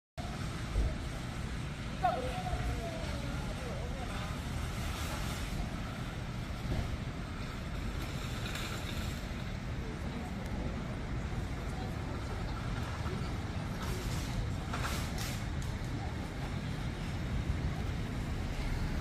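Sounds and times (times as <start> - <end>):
low rumble of traffic: 0.2 - 19.0.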